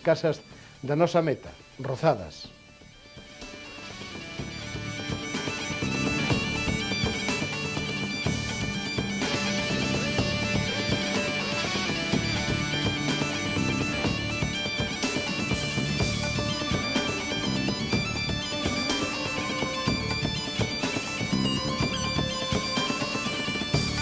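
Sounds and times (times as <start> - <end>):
bagpipe music with drone: 0.0 - 24.0.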